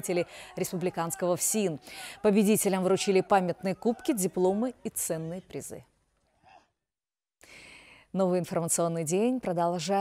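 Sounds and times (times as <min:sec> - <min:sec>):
faint breath: 0:00.2 - 0:00.6, 0:01.8 - 0:02.2, 0:07.4 - 0:08.1.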